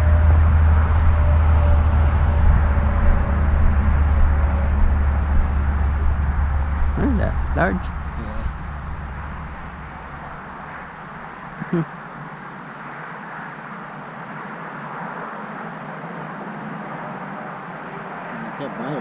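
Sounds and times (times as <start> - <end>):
low rumble: 0.0 - 12.1
outdoor background noise: 0.0 - 19.0.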